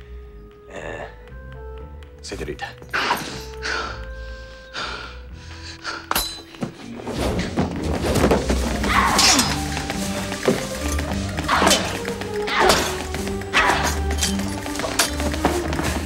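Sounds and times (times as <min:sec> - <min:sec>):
orchestral film score: 0:00.0 - 0:16.0.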